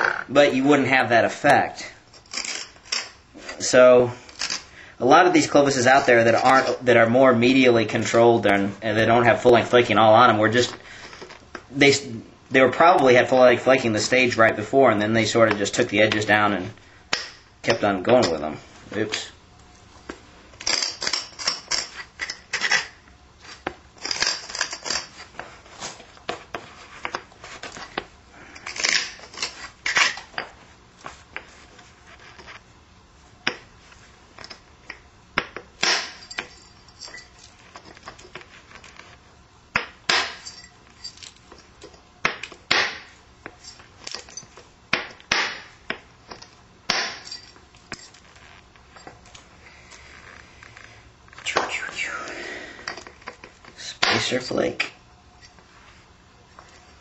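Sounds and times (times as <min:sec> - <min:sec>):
tool clicking and scraping on stone: 0:02.1 - 0:03.2, 0:20.6 - 0:25.4.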